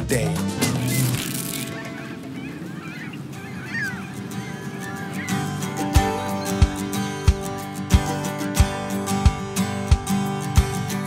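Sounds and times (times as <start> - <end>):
gull crying: 0.0 - 9.2.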